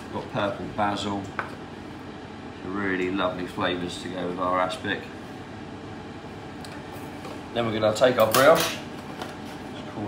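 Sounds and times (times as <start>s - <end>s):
kitchen room tone: 0.0s - 10.0s.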